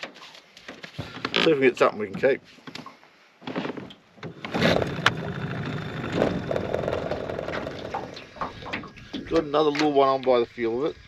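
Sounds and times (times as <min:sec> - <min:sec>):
outboard motor running: 0:04.3 - 0:09.4.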